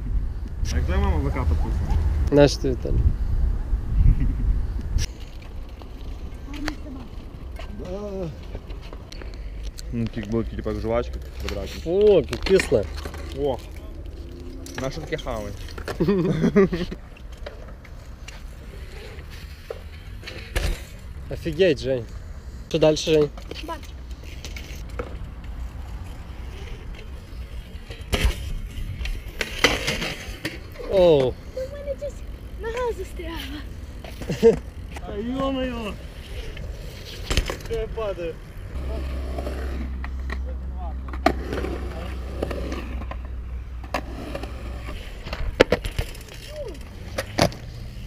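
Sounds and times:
bike rolling on concrete: 0.0 - 48.0.

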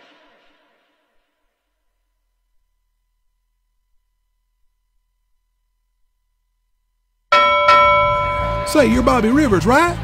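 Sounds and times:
bell struck and ringing: 7.3 - 10.0.

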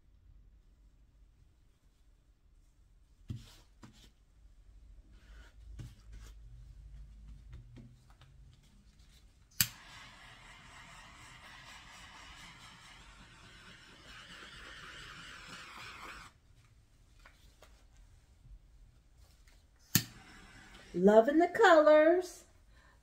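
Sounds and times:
gas torch ignition click: 9.6 - 10.0
torch flame hissing: 9.6 - 16.4.

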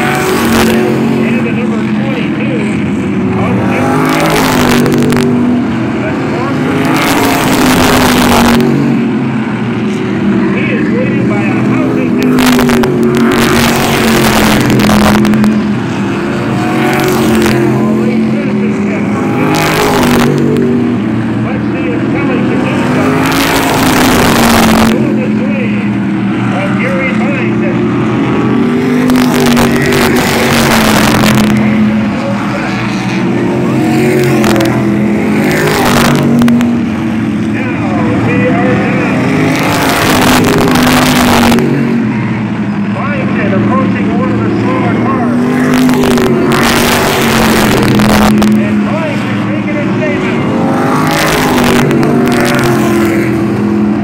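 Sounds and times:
cars passing close by: 0.0 - 54.0
race car engines: 0.0 - 54.0.

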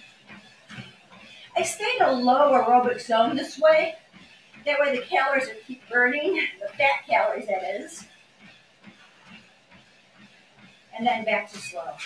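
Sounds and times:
footfalls on treadmill belt: 0.0 - 12.0.

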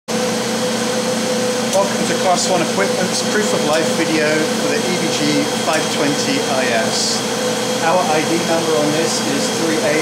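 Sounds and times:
lab equipment and air handling hum: 0.1 - 10.0.

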